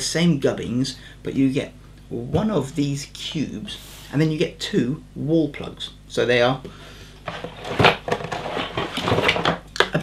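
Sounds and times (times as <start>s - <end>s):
cardboard packaging rustling: 7.3s - 9.6s.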